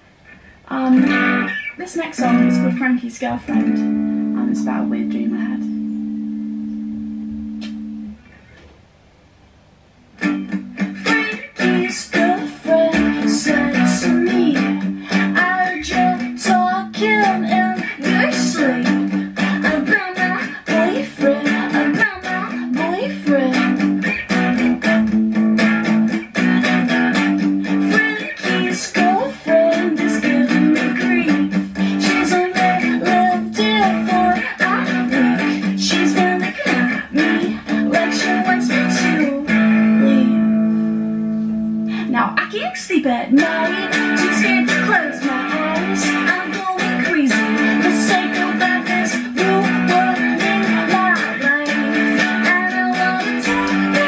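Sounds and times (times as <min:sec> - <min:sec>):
electric guitar strumming chords: 0:00.0 - 0:08.8, 0:10.1 - 0:42.8, 0:43.4 - 0:54.0.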